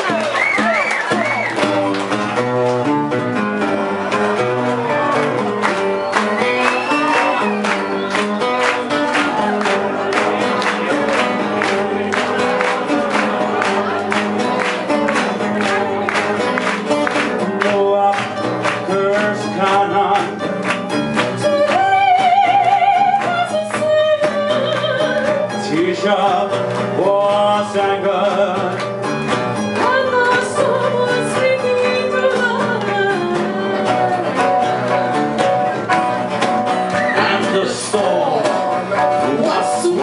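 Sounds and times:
hand claps: 0.0 - 25.6, 26.3 - 40.0
guitars strumming: 0.0 - 40.0
person singing: 6.0 - 20.7, 21.3 - 28.9, 29.7 - 35.1, 37.0 - 40.0.

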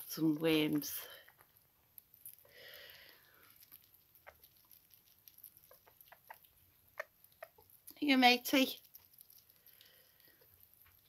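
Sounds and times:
small animals chewing clicks: 1.2 - 11.0.

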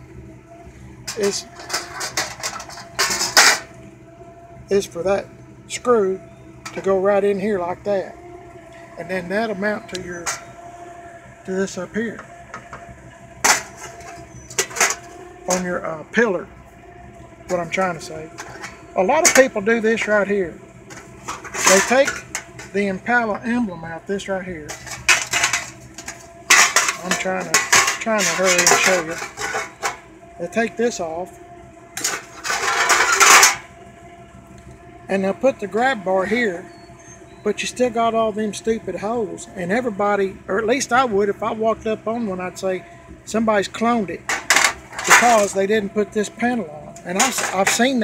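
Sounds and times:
metal trim panels clattering: 1.1 - 3.8, 9.9 - 10.5, 13.4 - 15.7, 17.5 - 19.6, 20.9 - 22.8, 24.7 - 30.1, 32.0 - 33.7, 44.3 - 45.6, 47.2 - 48.0.

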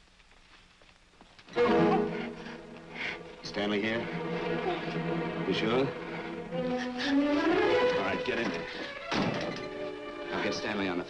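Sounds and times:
tense orchestral music: 1.5 - 11.0
door slamming shut: 9.0 - 9.7.

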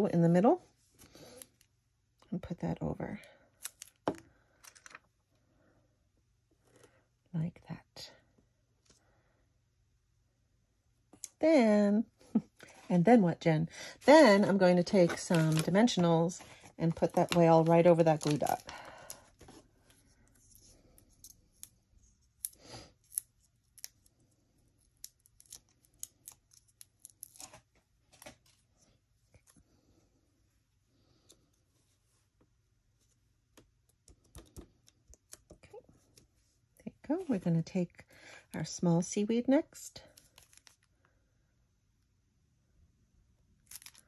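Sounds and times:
paper rustle: 14.4 - 18.8.

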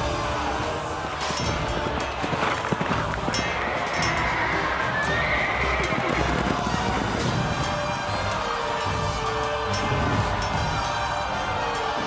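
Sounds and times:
background music: 0.0 - 12.0
galloping hooves: 0.2 - 12.0
horse whinnying: 3.4 - 7.2.

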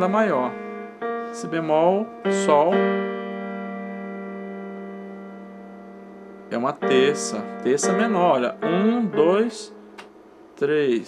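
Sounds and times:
electronic keyboard two-note chord: 0.0 - 10.1.

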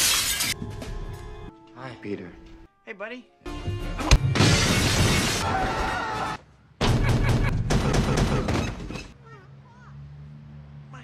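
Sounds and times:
crash of breaking debris: 4.2 - 5.8.

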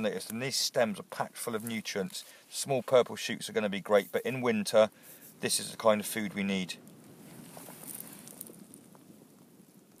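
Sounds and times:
faint outdoor background hiss: 0.0 - 10.0.

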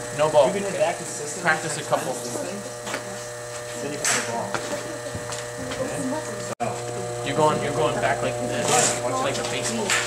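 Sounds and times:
electrical buzz: 0.0 - 10.0.

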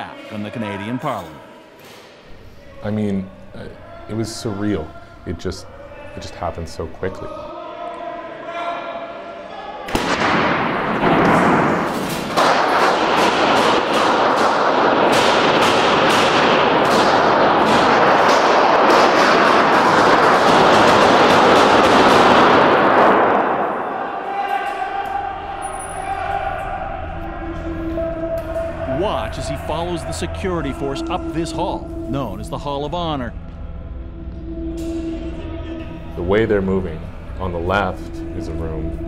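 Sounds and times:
gunshots echoing in a hall: 9.8 - 31.3.

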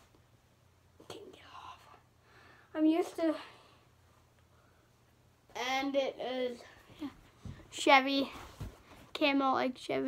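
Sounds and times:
soft whisper: 1.0 - 2.1.

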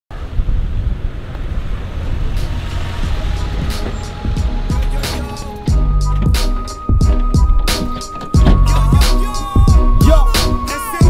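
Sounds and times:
wind on microphone: 0.1 - 4.9
car engine rumbling: 0.1 - 11.0.

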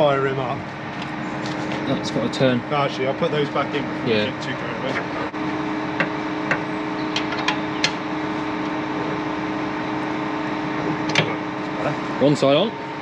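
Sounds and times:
tractor engine idling: 0.0 - 13.0.

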